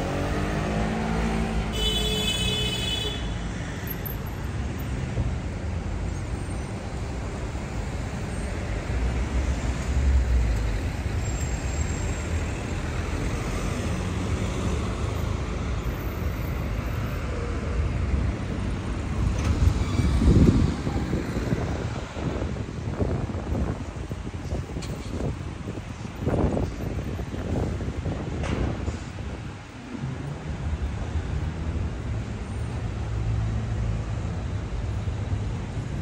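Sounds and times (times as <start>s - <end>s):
road traffic noise: 0.0s - 36.0s.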